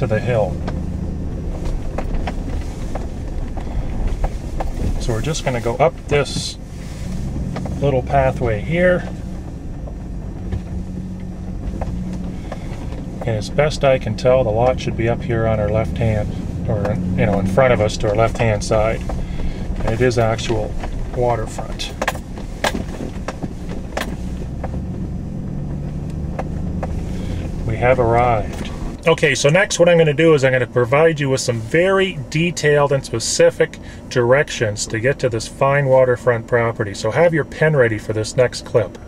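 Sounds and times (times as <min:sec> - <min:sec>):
knocks and rattles from bumps: 0:00.0 - 0:27.1
truck engine running: 0:00.0 - 0:39.0.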